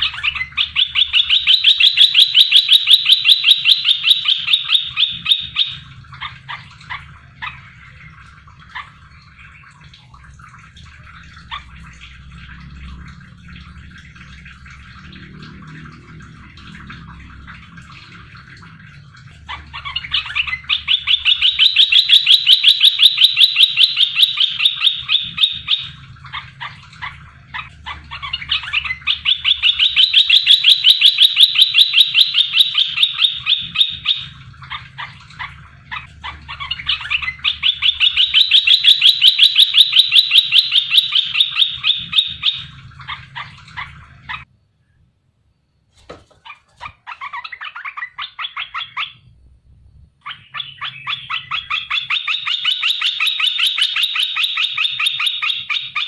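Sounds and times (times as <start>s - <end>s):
bulbul calling rapid notes: 0.0s - 5.8s, 19.8s - 26.0s, 27.6s - 34.3s, 35.9s - 42.7s.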